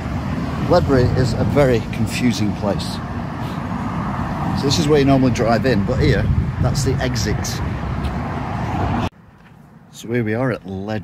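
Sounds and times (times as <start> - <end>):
quiet outdoor background: 0.0 - 11.0
road traffic rushing: 0.0 - 11.0.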